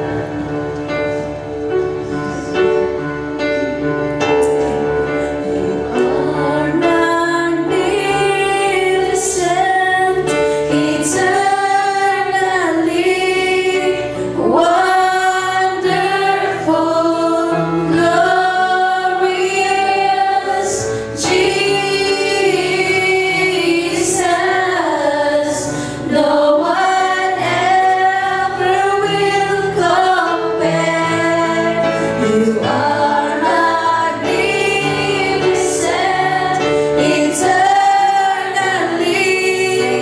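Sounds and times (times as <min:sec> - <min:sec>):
electric keyboard chords: 0:00.0 - 0:40.0
women singing worship song: 0:05.6 - 0:40.0.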